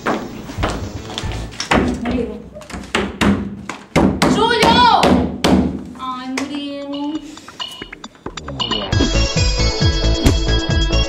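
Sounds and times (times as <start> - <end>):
palm pounding on wooden door: 2.8 - 5.8.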